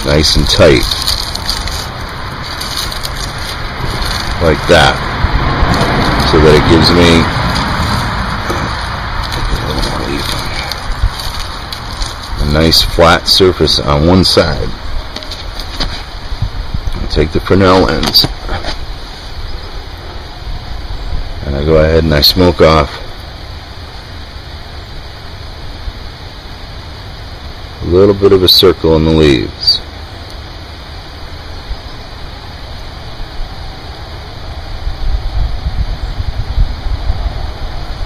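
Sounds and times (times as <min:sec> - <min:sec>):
dry leaves crackling and crunching: 0:00.0 - 0:16.4
steady low rumble: 0:00.0 - 0:28.1, 0:29.5 - 0:38.0
steady rushing noise: 0:00.0 - 0:38.0.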